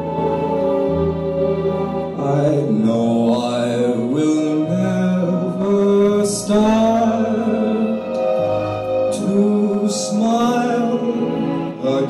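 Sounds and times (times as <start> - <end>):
instrumental accompaniment: 0.0 - 12.0
man singing into microphone: 2.2 - 12.0.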